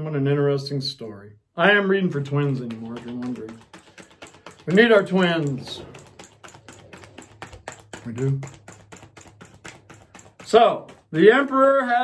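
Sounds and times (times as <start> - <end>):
cards being shuffled: 2.2 - 12.0.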